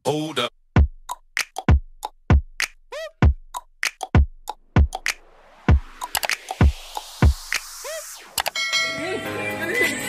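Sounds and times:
beat: 0.8 - 8.6
clicks: 6.0 - 6.6, 8.4 - 8.6
bell ringing: 8.5 - 9.3.

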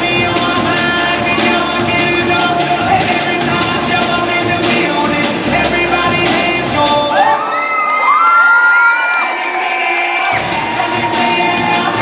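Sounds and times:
dance music: 0.0 - 12.0
audience cheering: 7.1 - 12.0
high-pitched whoops: 7.1 - 12.0.

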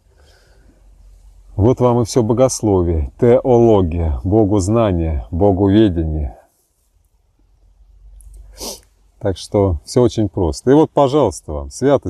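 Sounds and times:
man's sharp breath: 0.0 - 0.8, 8.4 - 8.9
faint low rumble: 0.0 - 10.6.

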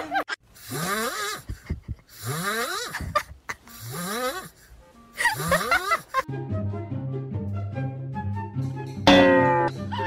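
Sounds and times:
cat snoring: 0.6 - 1.4, 3.8 - 4.5.

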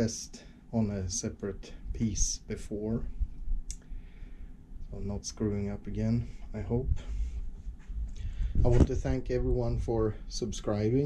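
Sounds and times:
sharp click: 3.7 - 3.9.

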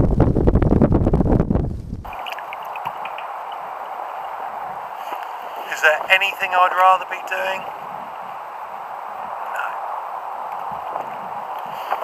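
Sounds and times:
wind buffeting microphone: 0.0 - 12.0
steady hiss: 2.1 - 12.0.

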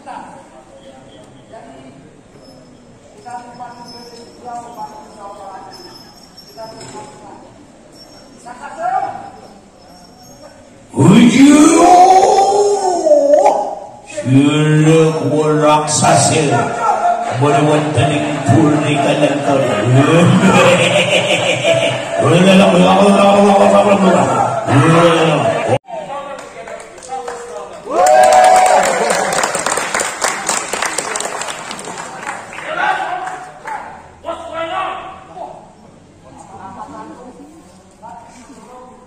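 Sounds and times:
person singing long wavering cry: 11.0 - 14.0
crowd shouting: 14.9 - 25.8
crowd clapping: 26.2 - 33.8.

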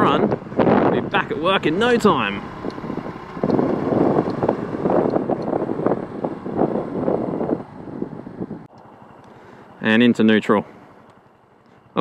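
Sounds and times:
wind buffeting microphone: 0.0 - 8.7.

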